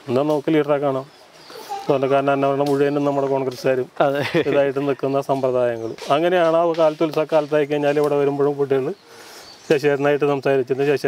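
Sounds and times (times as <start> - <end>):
man talking: 0.0 - 1.1, 1.8 - 9.0, 9.7 - 11.0.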